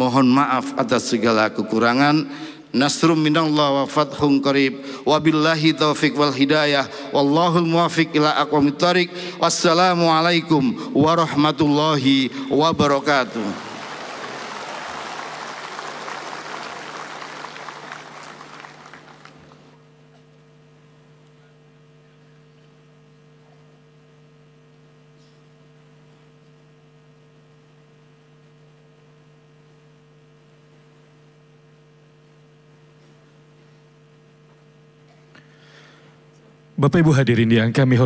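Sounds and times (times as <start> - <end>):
electrical hum: 0.0 - 38.0
audience applause: 13.0 - 19.8.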